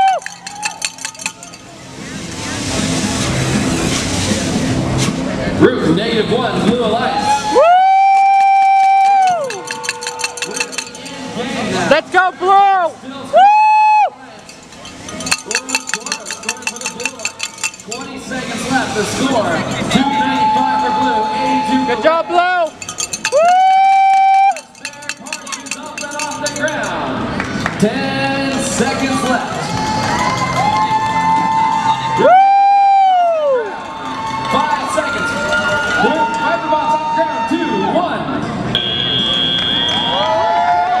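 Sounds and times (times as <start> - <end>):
spectators cheering and whooping: 0.0 - 1.1, 7.0 - 10.7, 13.3 - 14.2, 19.3 - 24.8, 29.2 - 38.0, 39.6 - 41.0.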